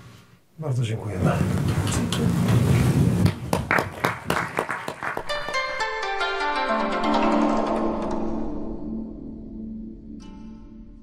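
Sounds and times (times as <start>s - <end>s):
audience applauding: 3.2s - 5.7s.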